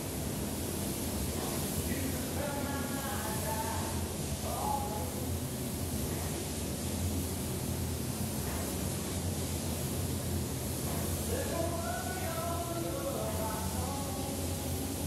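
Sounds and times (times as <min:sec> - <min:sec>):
spray gun hissing: 0:00.0 - 0:15.0.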